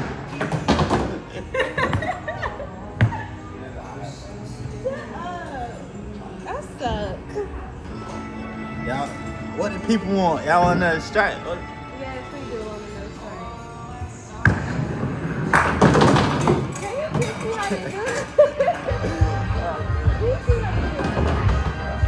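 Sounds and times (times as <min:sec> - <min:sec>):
background music: 0:00.0 - 0:22.0
bowling pins clattering: 0:14.5 - 0:17.6.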